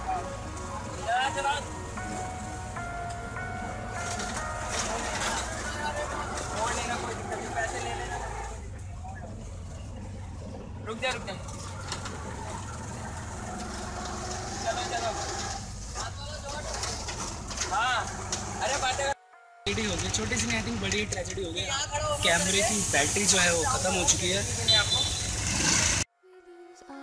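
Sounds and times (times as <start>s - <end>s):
low engine rumble: 0.0s - 26.1s
passing vehicles: 0.0s - 26.1s
calls or voices: 4.9s - 9.5s.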